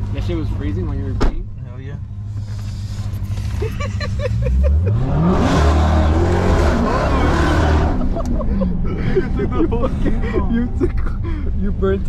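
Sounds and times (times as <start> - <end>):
car engine revving: 0.0 - 12.0
tires spinning in burnout: 3.5 - 8.5.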